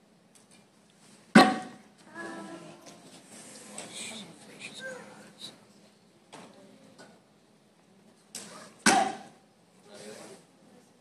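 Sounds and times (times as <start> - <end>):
hand strike smacking a board: 8.8 - 9.3.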